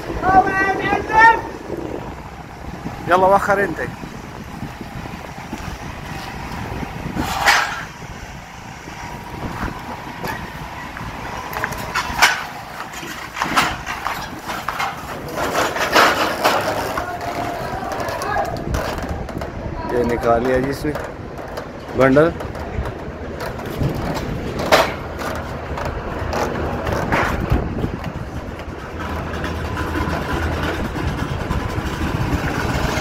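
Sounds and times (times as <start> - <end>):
steel props clanking together: 7.2 - 8.0, 11.7 - 19.1, 23.4 - 25.4.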